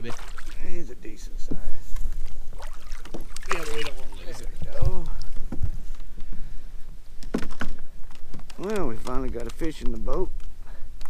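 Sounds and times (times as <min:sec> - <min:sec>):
fish splashing at water surface: 0:00.0 - 0:00.7, 0:02.2 - 0:04.3
wind rumbling on microphone: 0:00.0 - 0:11.0.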